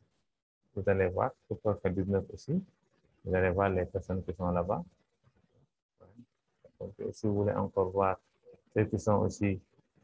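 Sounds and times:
person speaking: 0:00.8 - 0:04.9, 0:06.7 - 0:09.6.

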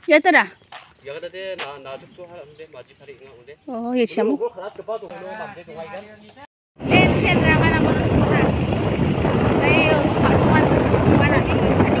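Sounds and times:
wind rushing over microphone: 0:06.8 - 0:12.0.

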